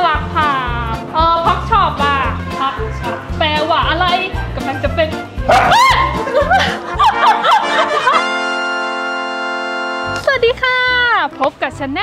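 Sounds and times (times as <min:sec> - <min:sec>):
upbeat background music: 0:00.0 - 0:12.0
dog yelping: 0:05.5 - 0:06.1.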